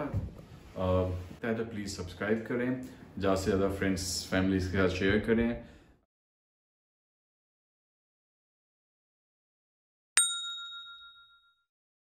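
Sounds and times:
bell ding: 0:10.2 - 0:11.7.

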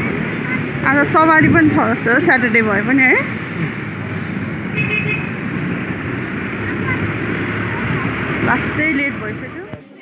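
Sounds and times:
motorcycle road and engine noise: 0:00.0 - 0:10.0
vehicle horn toot: 0:04.7 - 0:05.4.

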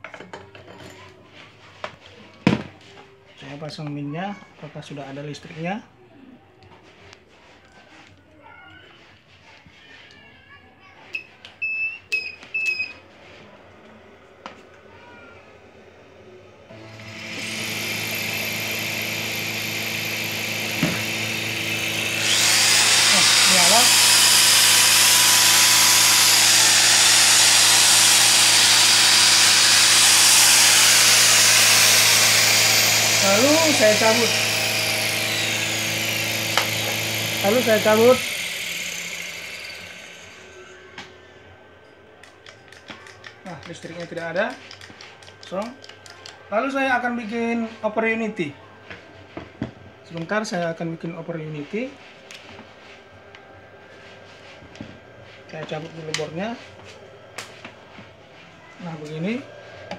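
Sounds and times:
electric motor whirring: 0:16.7 - 0:40.9.

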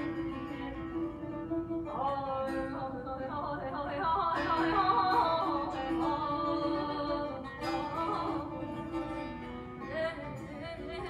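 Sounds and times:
woman singing with ornaments: 0:00.0 - 0:09.2
plucked lutes: 0:00.0 - 0:11.0.

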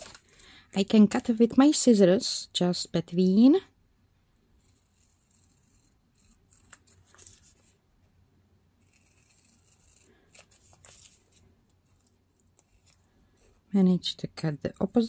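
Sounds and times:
scissors snipping paper: 0:04.7 - 0:07.7, 0:08.8 - 0:13.6.

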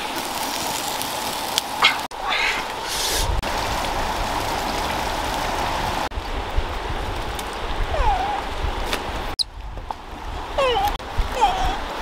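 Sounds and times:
steady outdoor hiss: 0:00.0 - 0:12.0
young monkey squealing: 0:01.8 - 0:03.2.

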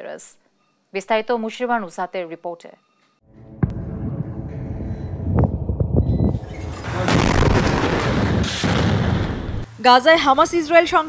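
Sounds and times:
distant bombardment rumble: 0:03.6 - 0:09.7.

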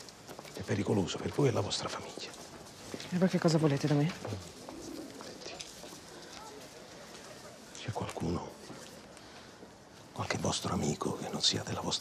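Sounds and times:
faint street ambience: 0:00.0 - 0:12.0.

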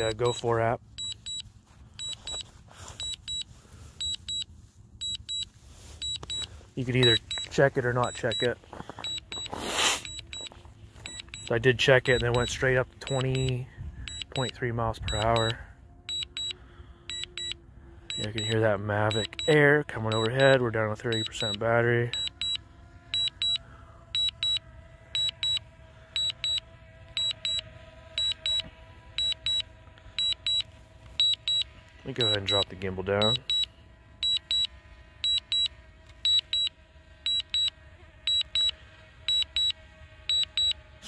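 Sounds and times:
drone propellers humming: 0:00.0 - 0:41.0
remote controller double beeps: 0:04.0 - 0:10.5, 0:11.1 - 0:13.5.

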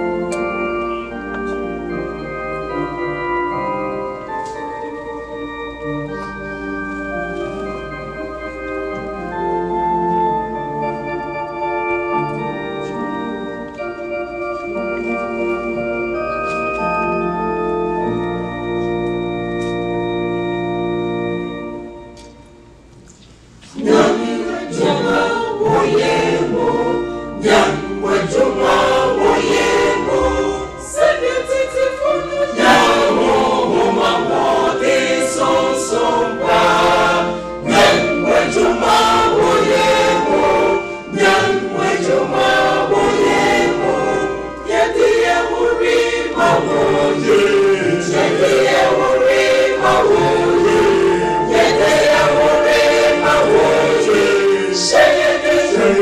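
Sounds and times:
choir singing gospel song: 0:23.6 - 0:56.0.

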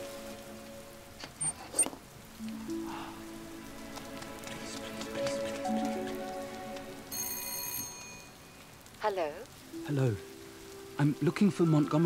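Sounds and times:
rain hissing: 0:00.0 - 0:12.0
doorbell ringing: 0:07.1 - 0:08.4.

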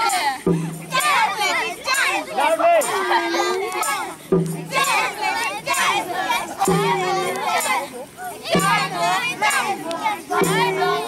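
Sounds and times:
children shouting and chanting: 0:00.0 - 0:11.0.

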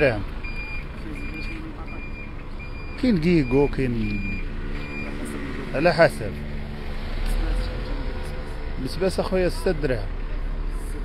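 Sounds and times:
low traffic rumble: 0:00.0 - 0:11.0
reversing alarm beeping: 0:00.4 - 0:05.4.

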